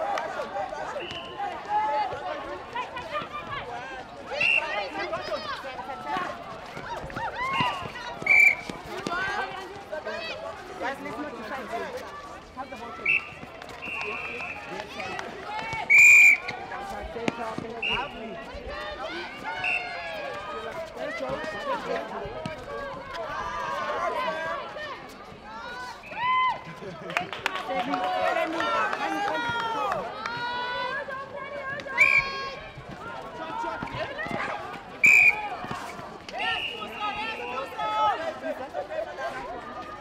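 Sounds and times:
whistle blasts: 0:01.0 - 0:01.4, 0:04.4 - 0:04.8, 0:07.6 - 0:08.7, 0:13.0 - 0:14.7, 0:15.9 - 0:16.5, 0:32.0 - 0:32.5, 0:35.0 - 0:35.5, 0:36.4 - 0:37.7.

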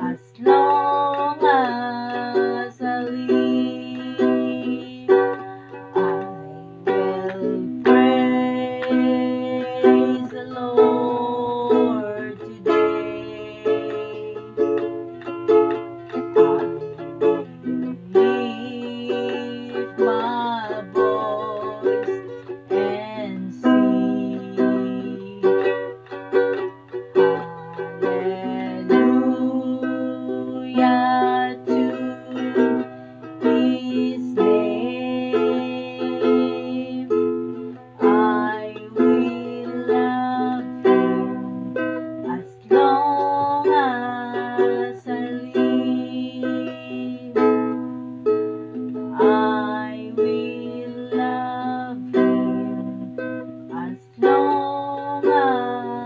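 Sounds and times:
acoustic string instrument strumming: 0:00.0 - 0:56.0
woman singing: 0:00.0 - 0:56.0.

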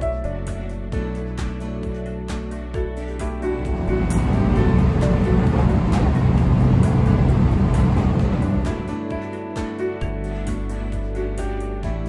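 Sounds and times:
background music with sustained tones: 0:00.0 - 0:12.0
train rumble inside carriage: 0:03.6 - 0:09.1.

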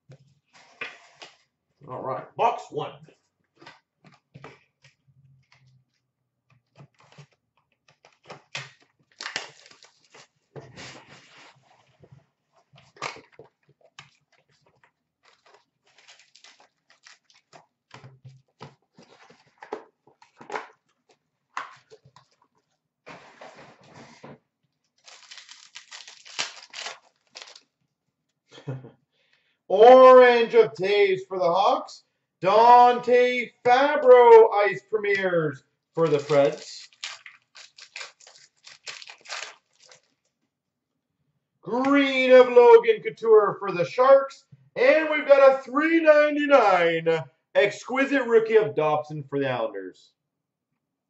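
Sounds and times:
card wrappers crinkling and tearing: 0:07.0 - 0:11.0, 0:12.8 - 0:17.8, 0:24.9 - 0:27.7, 0:36.0 - 0:40.3.

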